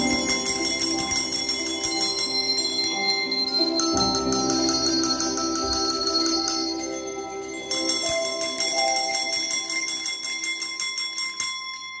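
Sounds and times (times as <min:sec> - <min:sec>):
desk bells ringing: 0:00.0 - 0:12.0.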